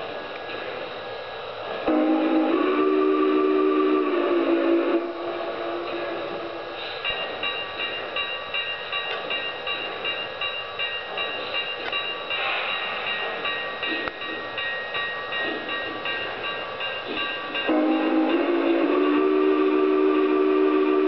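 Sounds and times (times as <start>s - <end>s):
model train running on track: 0.0s - 21.0s
model train ringing tone: 1.8s - 21.0s.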